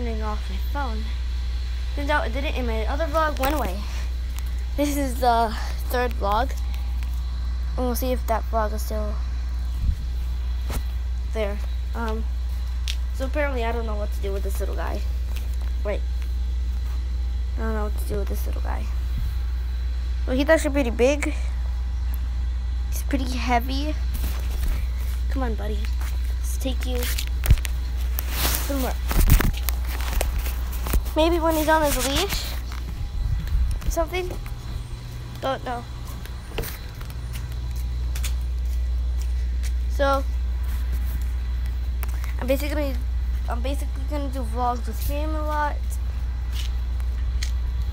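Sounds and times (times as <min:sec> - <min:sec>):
steady low rumble: 0:00.0 - 0:47.9.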